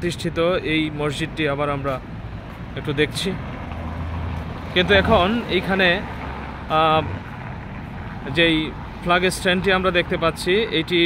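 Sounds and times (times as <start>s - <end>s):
distant road traffic rumble: 0.0s - 11.0s.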